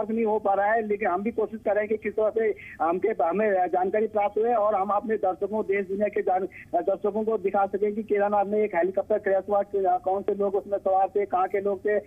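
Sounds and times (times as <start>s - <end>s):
person speaking over telephone: 0.0s - 12.0s.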